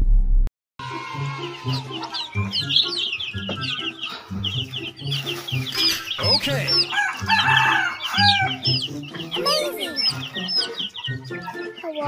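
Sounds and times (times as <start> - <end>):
chicken calling: 0.8 - 12.0
chicks peeping: 1.1 - 12.0.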